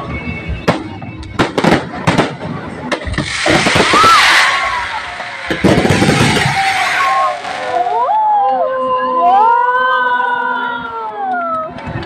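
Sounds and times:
firework bangs: 0:00.6 - 0:08.2
firework crackling hiss: 0:03.0 - 0:08.4.

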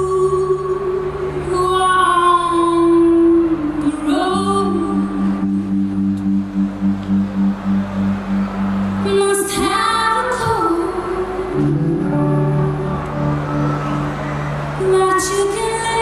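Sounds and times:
woman singing with vibrato: 0:00.0 - 0:06.0, 0:09.0 - 0:13.6, 0:14.8 - 0:16.0
guitar: 0:00.0 - 0:16.0
low pulsing note: 0:04.0 - 0:09.7, 0:11.4 - 0:15.0.

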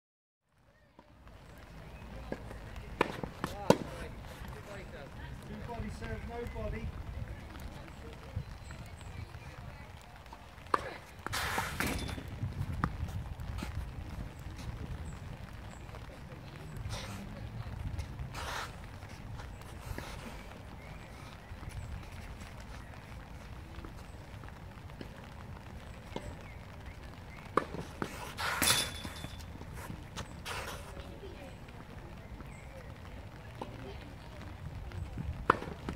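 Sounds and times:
racket striking tennis ball: 0:03.0 - 0:04.0, 0:10.6 - 0:12.3, 0:27.5 - 0:29.5.

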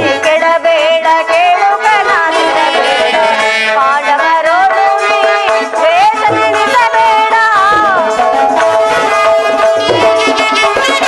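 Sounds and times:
ornamented melody with sliding notes: 0:00.0 - 0:11.0
held drone note: 0:02.0 - 0:06.5.

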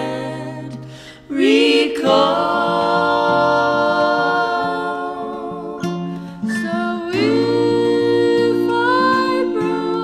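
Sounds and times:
three-part harmony singing: 0:00.0 - 0:10.0.

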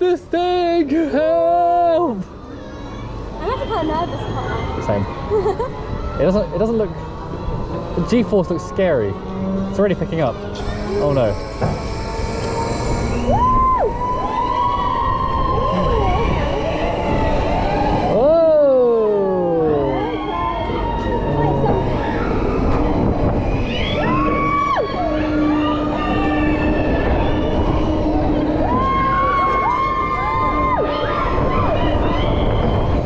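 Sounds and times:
steady whoosh of a spinning ride: 0:00.0 - 0:33.0
riders screaming and whooping: 0:02.0 - 0:09.3, 0:10.0 - 0:33.0.

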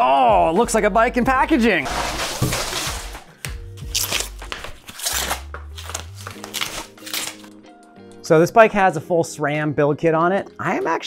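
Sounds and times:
background music: 0:00.0 - 0:11.0
cardboard and plastic rustling: 0:01.9 - 0:07.5.

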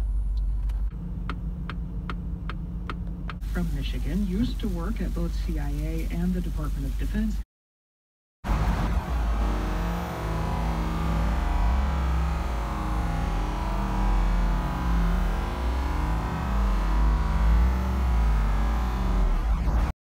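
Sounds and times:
car rumble from inside cabin: 0:00.0 - 0:07.3, 0:08.5 - 0:19.4.

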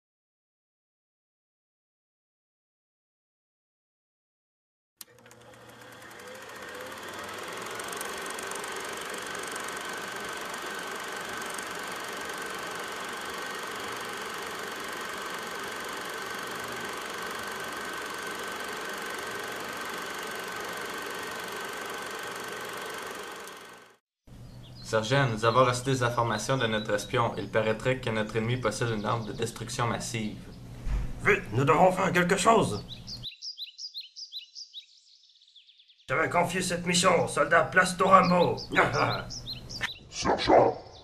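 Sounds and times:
click: 0:05.0 - 0:05.6
motor running with high whine: 0:05.0 - 0:24.8.

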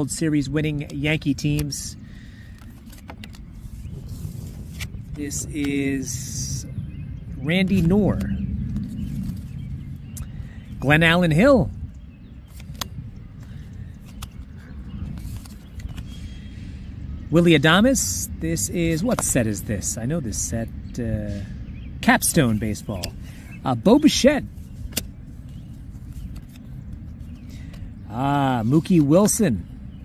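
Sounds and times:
low background rumble: 0:00.0 - 0:30.0
cards clicking and sliding: 0:02.5 - 0:05.8, 0:12.5 - 0:13.0, 0:14.0 - 0:16.1, 0:24.7 - 0:27.8
cards sliding ticks: 0:24.8 - 0:27.1.

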